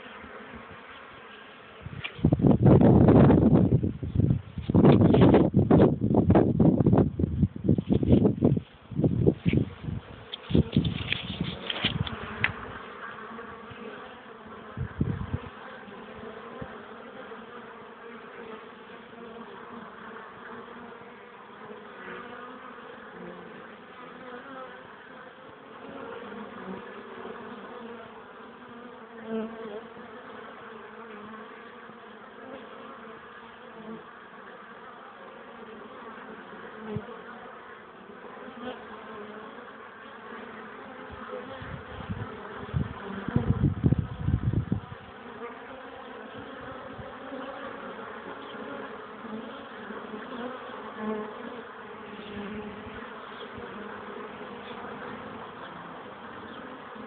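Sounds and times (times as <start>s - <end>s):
bees buzzing: 0.0s - 57.0s.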